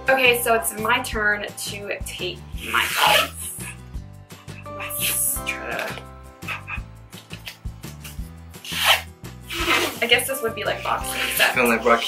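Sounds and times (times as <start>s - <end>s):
background music with bass line: 0.0s - 12.0s
adhesive tape pulled off roll: 2.6s - 3.7s, 7.2s - 10.1s.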